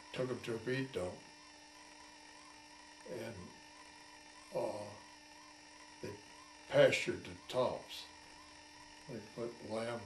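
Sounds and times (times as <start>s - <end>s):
faint steady hum: 0.0s - 10.0s
man speaking: 3.1s - 3.5s, 4.6s - 5.0s, 9.1s - 10.0s.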